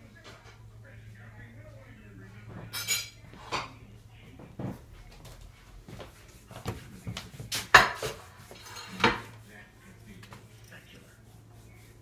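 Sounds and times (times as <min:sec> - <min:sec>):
dishes and cutlery clattering: 0:02.5 - 0:03.8, 0:07.6 - 0:09.3.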